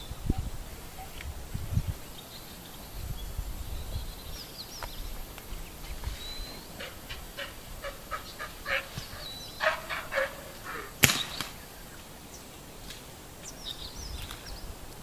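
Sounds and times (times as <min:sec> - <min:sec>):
animal or bird calls: 0:05.7 - 0:12.0
sharp crack: 0:10.2 - 0:11.7.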